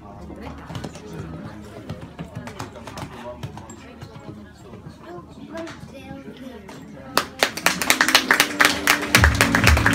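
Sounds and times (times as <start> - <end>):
people clapping: 7.1 - 9.9.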